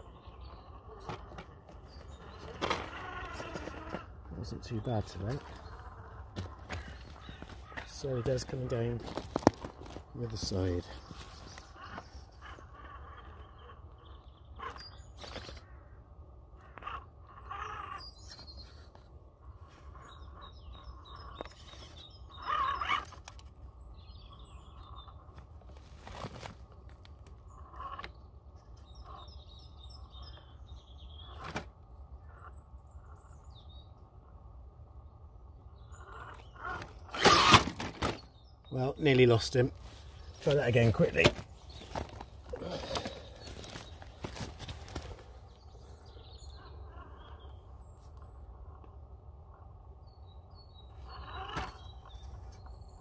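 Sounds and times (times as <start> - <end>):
toy truck drivetrain hum: 36.7 - 38.1
loud clatter of toy truck: 36.8 - 38.2
tyres scraping on stone: 37.1 - 38.2.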